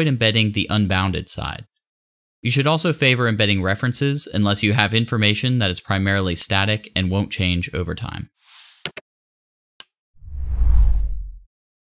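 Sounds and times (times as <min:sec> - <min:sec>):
whoosh with deep rumble: 0:10.2 - 0:11.5.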